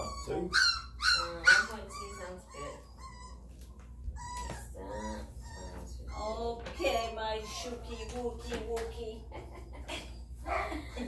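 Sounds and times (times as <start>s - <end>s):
puppy squealing and whining: 0.0s - 6.6s.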